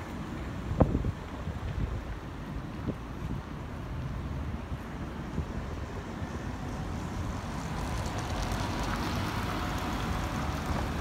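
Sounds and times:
bus engine and tyre noise: 0.0 - 11.0.

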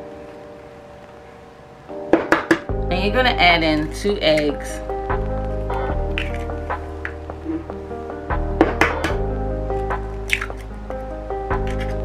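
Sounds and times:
background music of held tones: 0.0 - 12.0
egg cracking: 5.2 - 7.8, 9.8 - 12.0.

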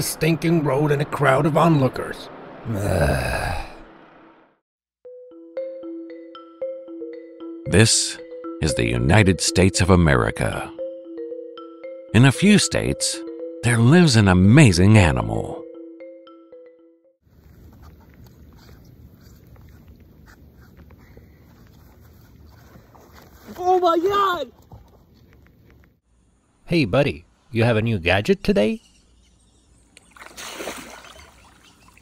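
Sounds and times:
heavy sigh: 2.7 - 3.8.

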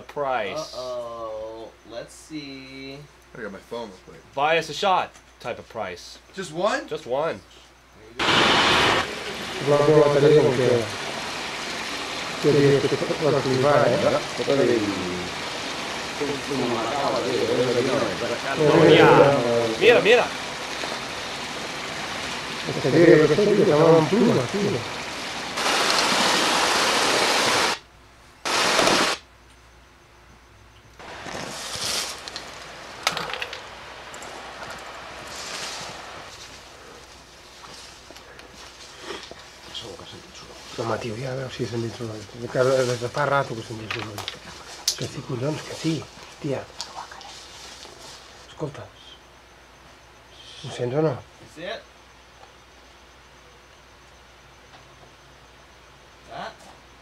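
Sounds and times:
people speaking: 0.0 - 8.2, 9.0 - 11.0, 12.4 - 15.4, 16.2 - 20.4, 22.6 - 24.9, 39.7 - 47.2, 56.3 - 56.6
tape hiss: 0.0 - 57.0
loud bursts of noise: 8.2 - 9.8, 10.8 - 27.8, 28.4 - 29.3.

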